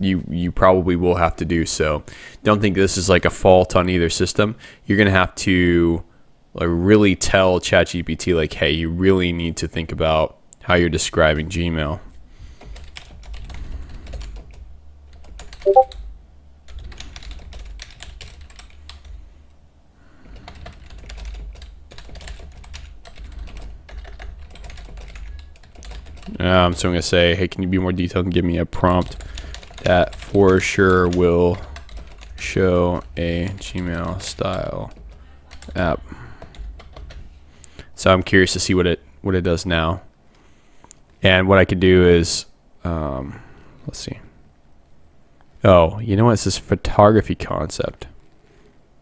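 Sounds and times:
typing on computer keyboard: 12.6s - 16.1s, 16.7s - 19.1s, 20.3s - 26.4s, 29.0s - 30.4s, 31.0s - 32.4s, 33.0s - 37.2s.

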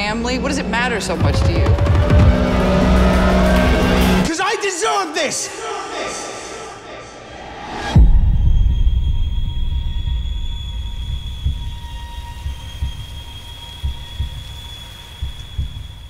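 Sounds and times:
heartbeat-like pulses: 0.0s - 4.2s, 7.6s - 16.0s
low rumbling drone: 7.9s - 16.0s
deep low boom: 8.0s - 14.2s.

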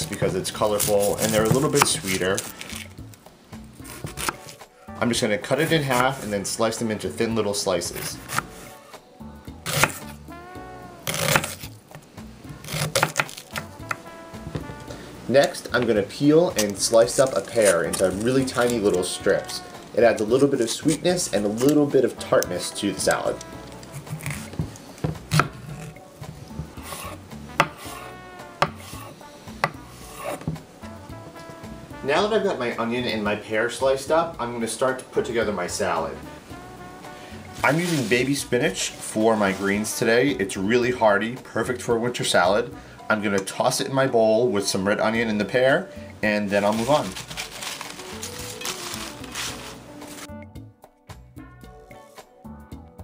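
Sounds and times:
knife scraping: 0.0s - 3.0s, 3.8s - 4.7s, 5.5s - 6.4s, 7.9s - 8.9s, 9.6s - 11.8s, 12.6s - 15.6s, 16.5s - 30.7s, 46.6s - 50.3s
acoustic guitar music: 0.0s - 33.4s, 34.3s - 39.9s, 45.4s - 52.1s
leaves rustling in metal colander: 0.2s - 2.9s, 15.3s - 24.8s, 37.6s - 38.4s, 46.3s - 50.3s.

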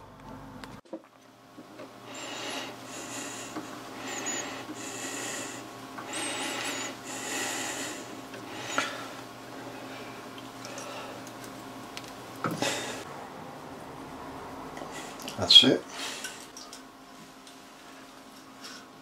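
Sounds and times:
metal threads rubbing: 2.1s - 7.3s.

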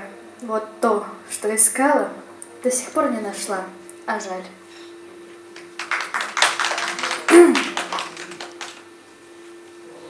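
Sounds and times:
small audience applause: 5.5s - 8.9s.

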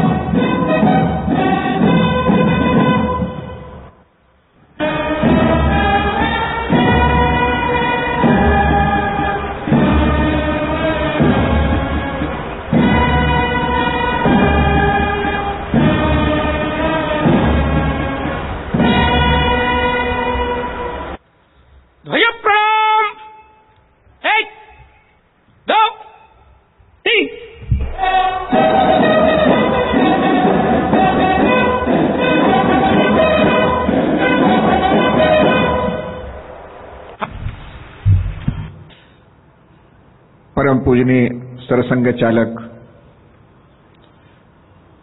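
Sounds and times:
dull thumps on microphone: 27.6s - 28.0s, 37.2s - 38.9s.

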